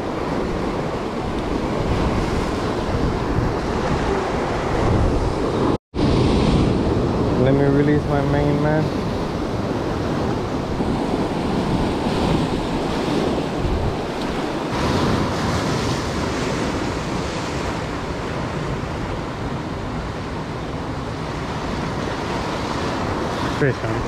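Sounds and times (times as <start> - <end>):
ocean surf washing over rocks: 0.0 - 24.0.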